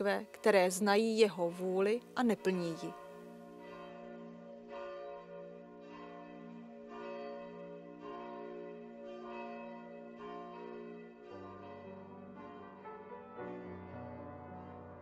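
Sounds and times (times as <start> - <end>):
church bells ringing: 0.0 - 15.0.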